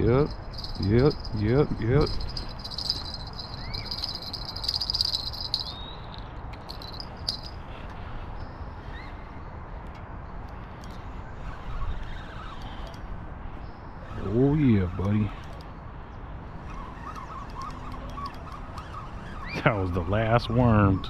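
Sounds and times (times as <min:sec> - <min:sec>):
cricket trilling: 0:00.0 - 0:06.2
low outdoor rumble: 0:00.0 - 0:12.4
short rising chirp: 0:02.1 - 0:07.6.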